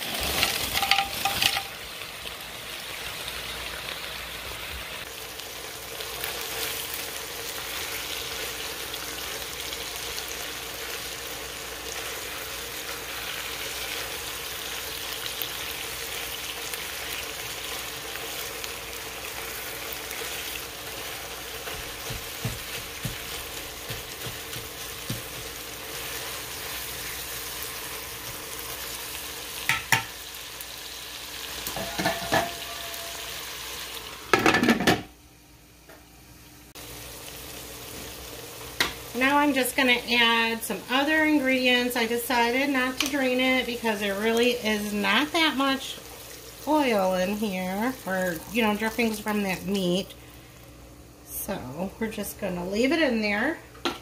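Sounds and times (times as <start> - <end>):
meat and vegetables sizzling in pot: 0.0 - 54.0.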